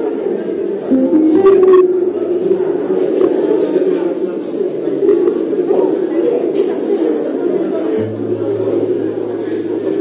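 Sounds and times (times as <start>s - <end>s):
acoustic guitar playing: 0.9s - 4.0s, 8.0s - 10.0s.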